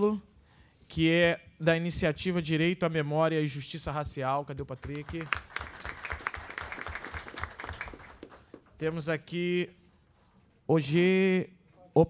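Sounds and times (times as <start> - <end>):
audience applauding: 4.8 - 8.7.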